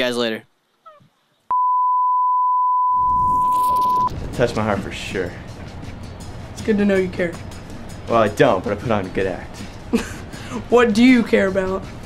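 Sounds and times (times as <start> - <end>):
steady test-tone beep: 1.5 - 4.1.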